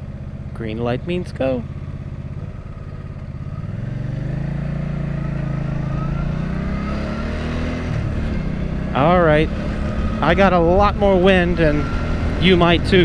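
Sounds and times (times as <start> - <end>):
motorcycle engine accelerating: 0.0 - 13.0.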